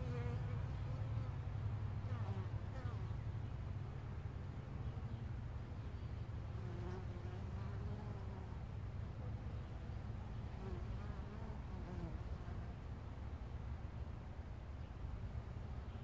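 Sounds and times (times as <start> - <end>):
steady low hum: 0.0 - 16.0.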